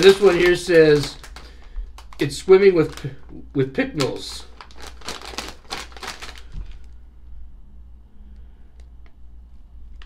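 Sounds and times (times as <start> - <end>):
foil chip bag crinkling: 0.0 - 7.0
steady low hum: 0.0 - 10.0.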